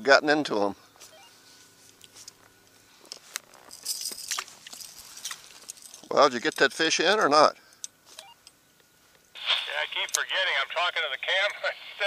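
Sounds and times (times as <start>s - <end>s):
faint steady hum: 0.0s - 12.0s
light clicks and rustles: 1.8s - 9.2s.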